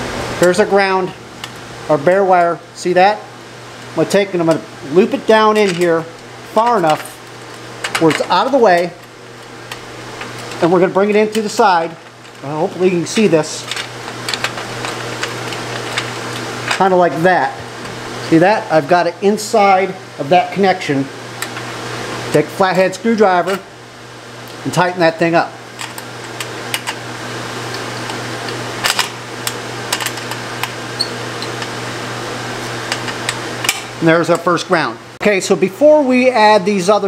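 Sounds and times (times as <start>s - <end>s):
low hum and hiss: 0.0s - 37.0s
man talking: 0.4s - 1.2s, 1.9s - 3.3s, 3.9s - 7.1s, 8.0s - 9.0s, 10.6s - 13.8s, 16.7s - 21.2s, 22.3s - 23.7s, 24.6s - 25.6s, 34.0s - 37.0s
copper wire clicking and rubbing: 13.1s - 16.9s.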